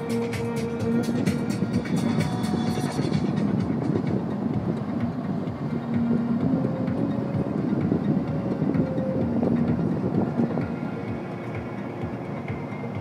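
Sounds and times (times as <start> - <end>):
music with fast beat: 0.0 - 13.0
road and tyre noise in car: 0.0 - 13.0.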